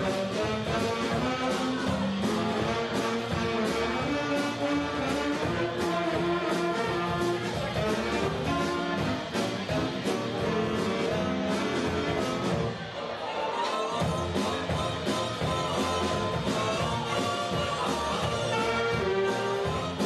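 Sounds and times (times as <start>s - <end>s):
big band swing music: 0.0s - 20.0s.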